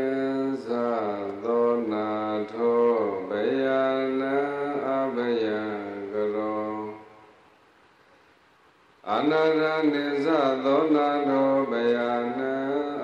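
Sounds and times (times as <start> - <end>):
man chanting into a microphone: 0.0 - 7.3, 9.0 - 13.0.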